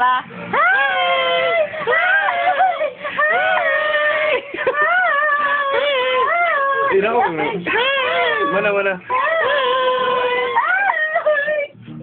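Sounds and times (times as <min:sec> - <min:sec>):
lower voice: 0:11.6 - 0:12.0.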